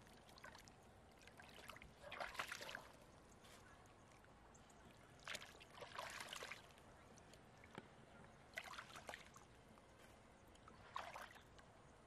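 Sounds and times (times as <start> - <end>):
water sloshing and splashing: 0.0 - 3.6, 5.2 - 7.8, 8.5 - 9.5, 10.5 - 11.8.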